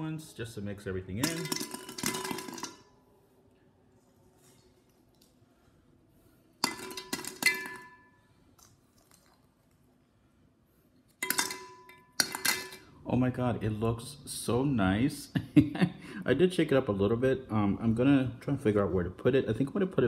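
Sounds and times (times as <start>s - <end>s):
ornaments clinking in glass vase: 1.2s - 2.9s.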